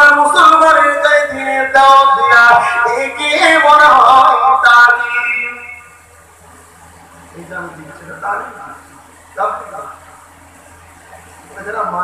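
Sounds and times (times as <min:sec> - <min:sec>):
man chanting over a pa system: 0:00.0 - 0:06.1.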